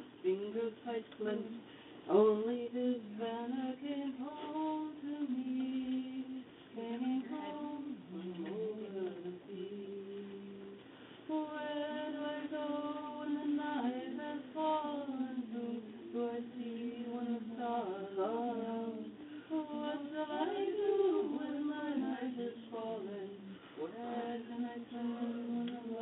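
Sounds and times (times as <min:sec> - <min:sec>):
woman singing wordless melody: 0:00.0 - 0:26.0
singer breathing: 0:01.6 - 0:02.1, 0:19.2 - 0:19.6.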